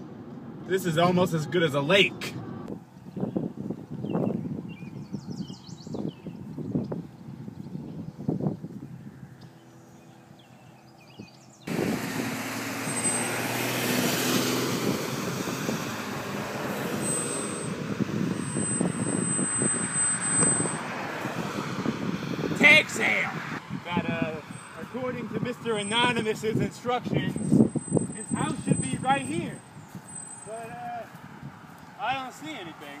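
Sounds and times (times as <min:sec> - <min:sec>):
cars rushing by: 0:00.0 - 0:04.8, 0:06.1 - 0:33.0.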